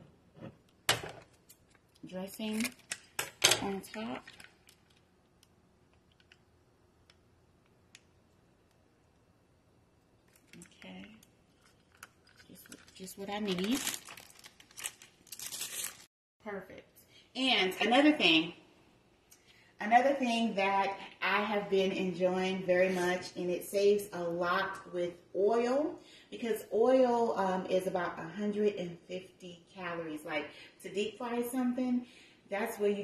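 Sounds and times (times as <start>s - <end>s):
plastic bag crinkling: 11.6s - 16.1s
plastic packaging handled: 11.6s - 16.1s.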